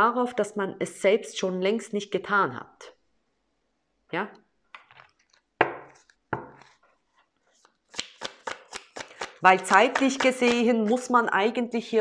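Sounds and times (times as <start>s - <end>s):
cards shuffling clicks: 7.6s - 9.8s.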